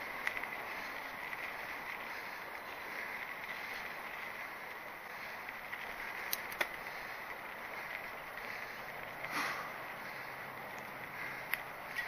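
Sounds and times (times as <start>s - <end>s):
bike tyre and wind noise: 0.0s - 12.0s
sharp clicks: 6.2s - 6.8s.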